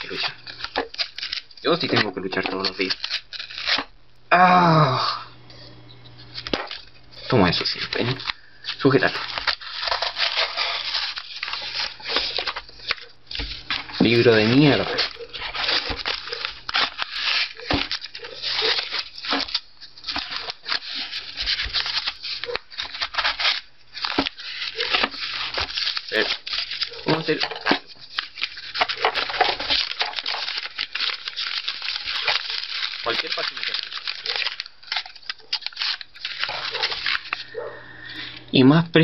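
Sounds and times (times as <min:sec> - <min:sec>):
paper tearing and rustling: 0:00.0 - 0:03.9, 0:06.2 - 0:37.6.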